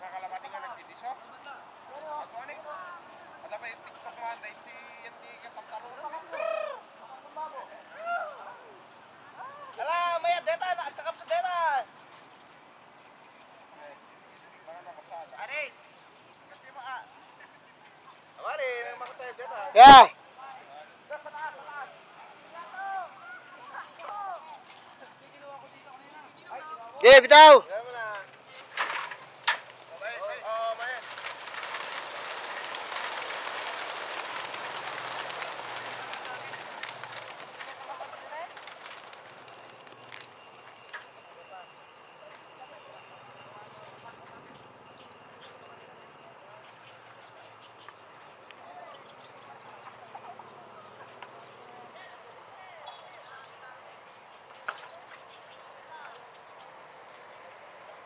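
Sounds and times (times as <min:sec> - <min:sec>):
birds calling: 0:00.0 - 0:07.4, 0:26.2 - 0:41.8
pigeon flock wings flapping: 0:29.6 - 0:40.6.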